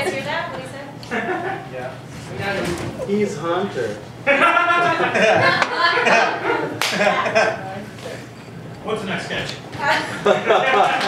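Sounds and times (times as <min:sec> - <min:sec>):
audience laughing: 0:01.1 - 0:01.7, 0:04.2 - 0:07.7, 0:09.8 - 0:11.0.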